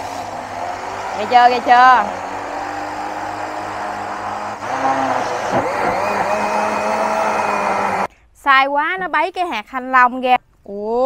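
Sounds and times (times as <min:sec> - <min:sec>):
blender running: 0:00.0 - 0:08.1.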